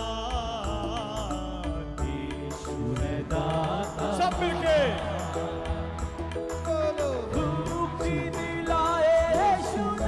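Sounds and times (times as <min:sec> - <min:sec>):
live devotional band music: 0:00.0 - 0:10.0
person singing: 0:00.0 - 0:10.0.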